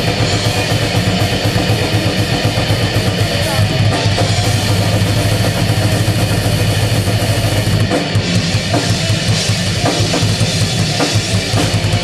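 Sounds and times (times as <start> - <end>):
distorted guitars and bass: 0.0 - 12.0
fast dense drumming: 0.0 - 12.0.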